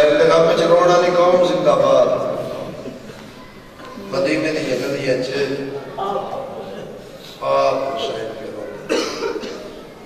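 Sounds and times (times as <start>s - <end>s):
man speaking: 4.0s - 8.9s
person coughing: 8.9s - 9.7s.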